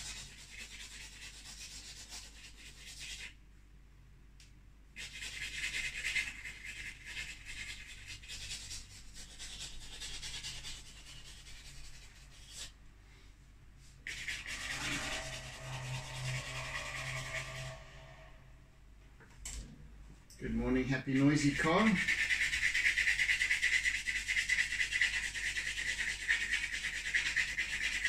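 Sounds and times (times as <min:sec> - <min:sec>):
pastel scratching on canvas: 0:00.0 - 0:03.4, 0:05.0 - 0:12.8, 0:14.0 - 0:18.2, 0:21.4 - 0:28.0.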